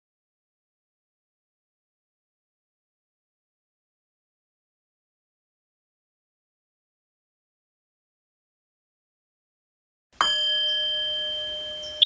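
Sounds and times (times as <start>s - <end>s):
struck metal bell ringing: 10.2s - 12.0s.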